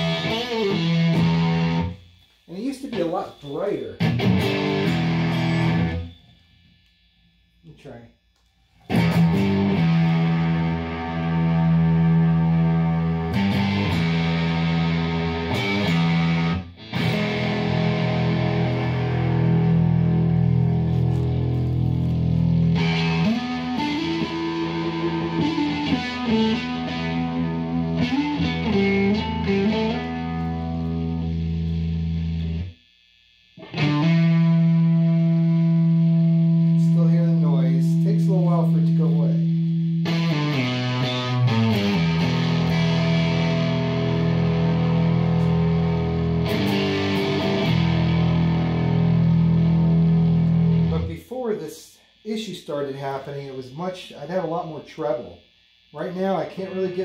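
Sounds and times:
distorted electric guitar: 0:00.0 - 0:57.0.

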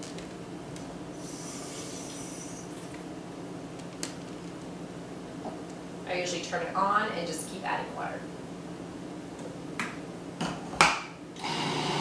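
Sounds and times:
faucet water running: 0:01.2 - 0:03.0.

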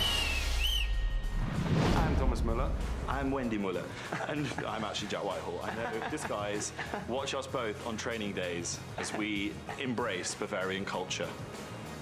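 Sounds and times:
whistle blasts: 0:00.0 - 0:01.5
whoosh: 0:00.0 - 0:03.3
background music with bass: 0:00.0 - 0:12.0.

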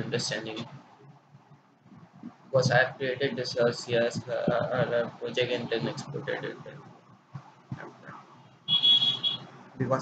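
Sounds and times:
high-pitched steady beep: 0:08.7 - 0:09.5.

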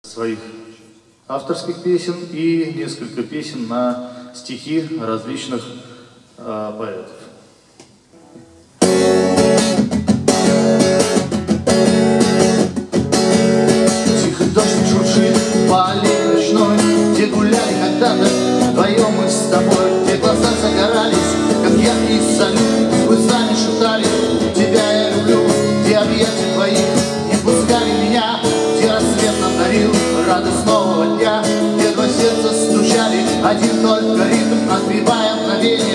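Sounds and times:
acoustic guitar strumming: 0:08.1 - 0:35.9.

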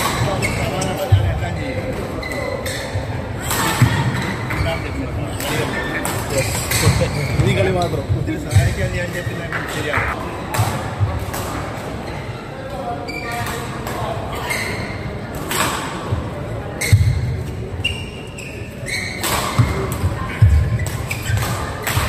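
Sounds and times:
racket hitting shuttlecock: 0:19.2 - 0:22.0.

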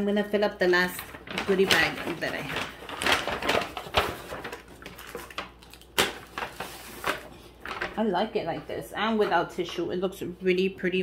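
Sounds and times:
paper bags rustling and crinkling: 0:00.3 - 0:08.8.

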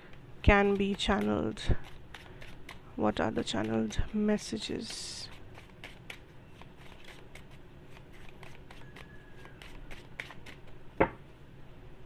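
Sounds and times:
cards being shuffled: 0:04.7 - 0:10.8.

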